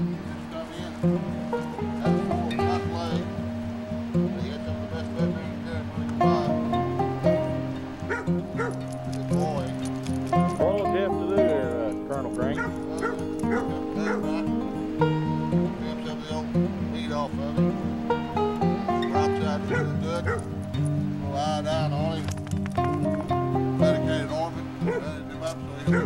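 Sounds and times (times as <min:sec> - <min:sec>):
background music: 0:00.0 - 0:26.0
dog yipping and whining: 0:08.1 - 0:08.8, 0:12.6 - 0:14.3, 0:19.7 - 0:20.5.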